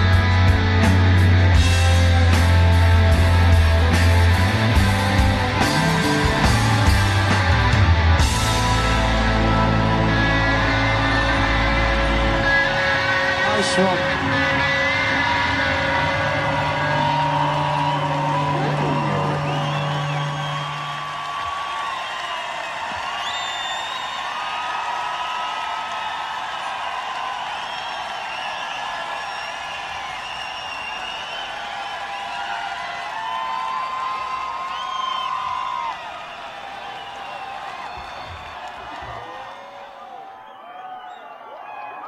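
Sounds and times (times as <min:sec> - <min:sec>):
crowd cheering and whistling: 0:00.0 - 0:42.0.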